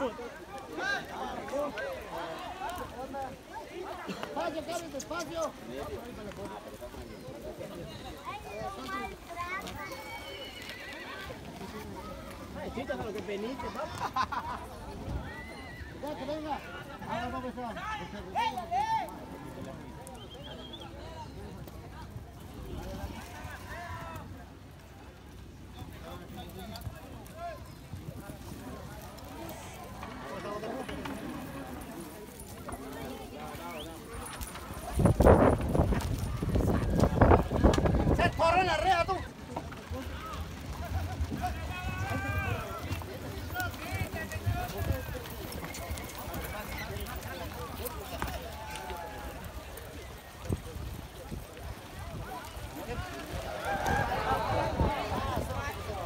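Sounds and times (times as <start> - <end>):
people's voices: 0.0 - 56.0.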